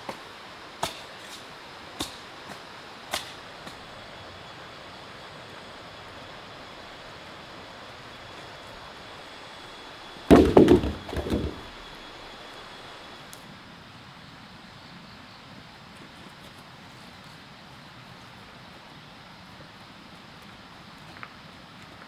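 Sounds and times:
outdoor background noise: 0:00.0 - 0:22.0
heavy log thudding on ground: 0:10.3 - 0:12.0.

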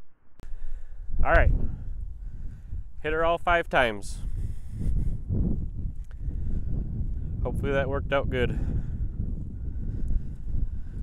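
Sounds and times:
wind buffeting microphone: 0:00.4 - 0:11.0.

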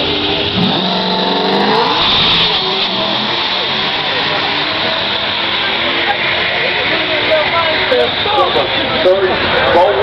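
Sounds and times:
cars accelerating hard: 0:00.0 - 0:10.0.

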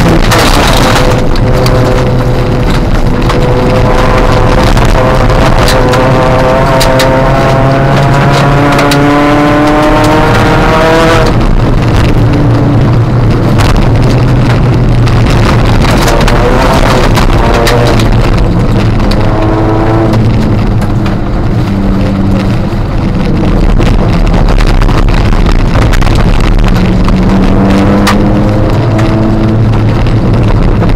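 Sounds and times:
stones hitting car: 0:00.0 - 0:10.2
rally car engine pulling hard: 0:00.0 - 0:30.9.

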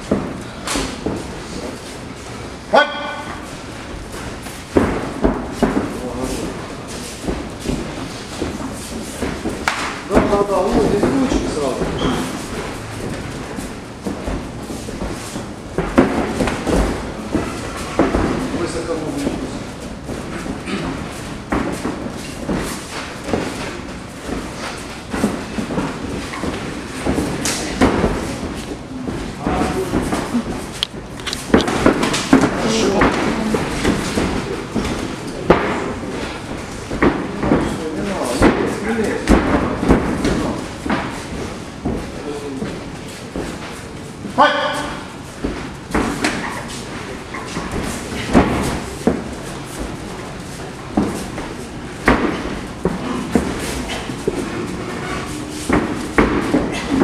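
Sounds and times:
strikes and bodies hitting mat: 0:00.0 - 0:57.0
voices: 0:32.6 - 0:33.9.

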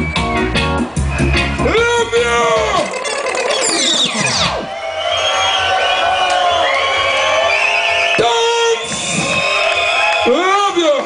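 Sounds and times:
reggae record winding down: 0:00.0 - 0:06.8
crowd cheering and whooping: 0:00.0 - 0:11.0.

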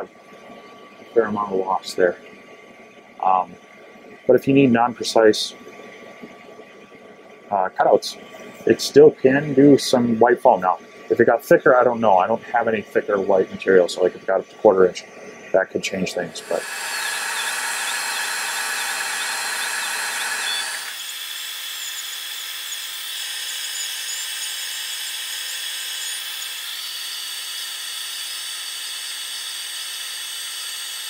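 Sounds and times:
steady hiss: 0:07.5 - 0:21.0
stepper motors whining: 0:16.1 - 0:31.0.

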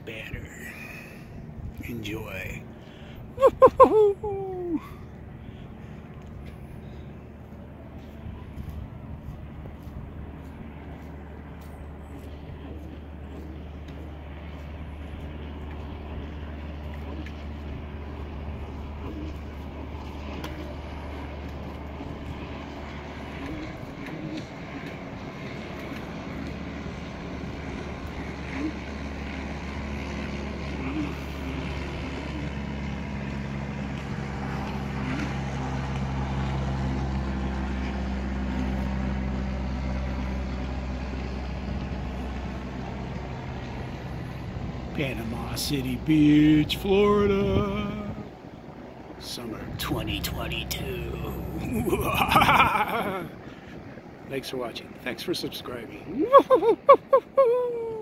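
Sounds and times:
propeller plane droning overhead: 0:00.0 - 0:58.0.

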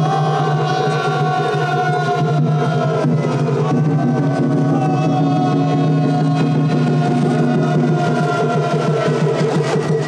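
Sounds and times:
rapid even drumming: 0:00.0 - 0:10.0.

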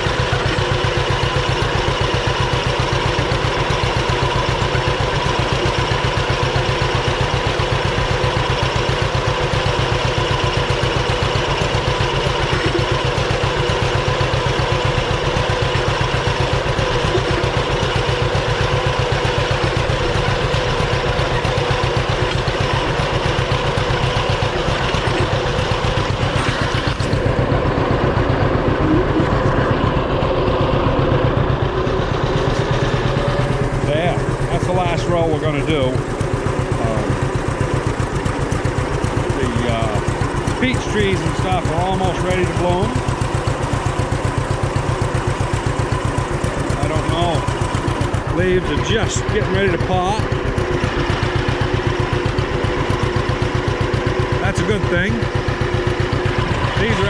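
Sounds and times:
tractor engine running: 0:00.0 - 0:57.0.

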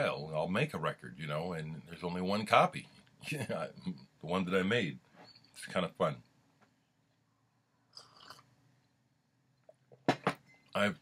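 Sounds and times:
sipping and swallowing: 0:07.9 - 0:08.6.

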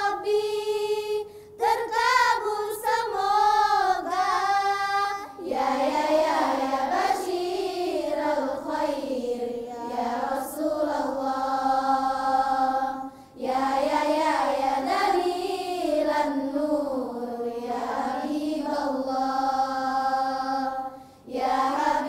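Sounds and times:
girls choir singing in unison: 0:00.0 - 0:22.0.

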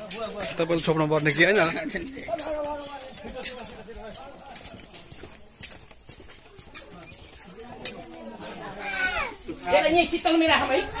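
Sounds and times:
people talking: 0:00.0 - 0:05.5, 0:06.2 - 0:11.0
footsteps on concrete: 0:00.0 - 0:11.0.

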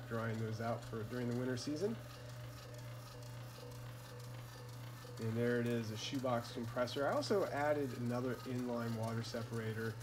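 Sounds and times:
low hum with higher tones: 0:00.0 - 0:10.0.

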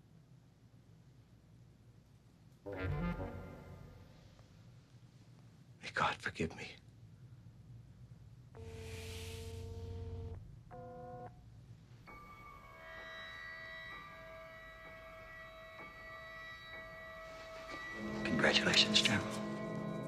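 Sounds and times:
music with long held notes: 0:02.7 - 0:04.3, 0:12.1 - 0:20.0
scanner electronic hum: 0:08.5 - 0:11.4
hiss: 0:08.8 - 0:09.7.

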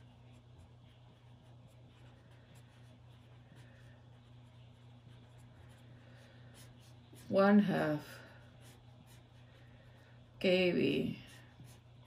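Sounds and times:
marker writing on paper: 0:00.0 - 0:09.5
low steady hum: 0:00.0 - 0:12.0.

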